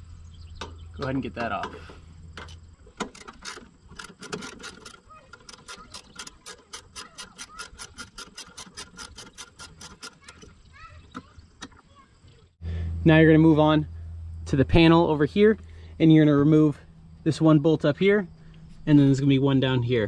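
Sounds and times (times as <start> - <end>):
socket ratchet clicking: 2.4 - 10.6.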